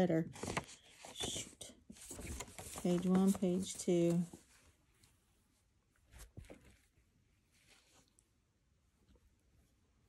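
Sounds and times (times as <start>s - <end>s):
paper rustling: 0.3s - 4.6s, 6.1s - 8.2s.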